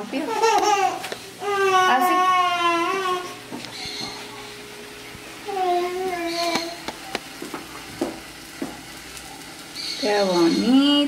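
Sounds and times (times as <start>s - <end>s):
tortilla sizzling on griddle: 0.0s - 11.0s
small crackles and ticks: 0.4s - 1.3s, 3.5s - 4.3s, 5.9s - 11.0s.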